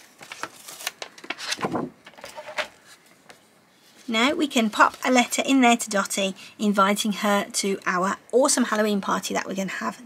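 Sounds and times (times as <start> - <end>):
paper rustling: 0.0 - 5.4.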